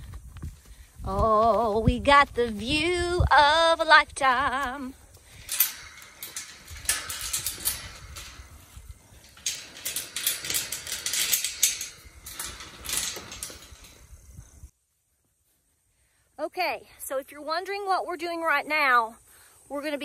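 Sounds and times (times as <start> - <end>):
metal chain clinking against gate: 4.2 - 14.7.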